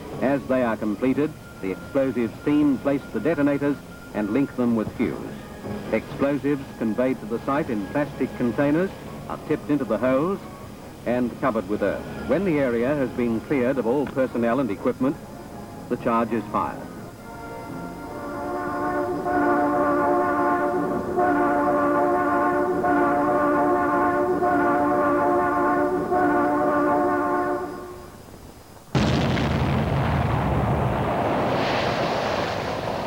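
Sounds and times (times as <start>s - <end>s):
multi-note warning horn: 17.2s - 28.2s
explosive rock blast: 28.9s - 33.0s
rumble after blast: 28.9s - 33.0s.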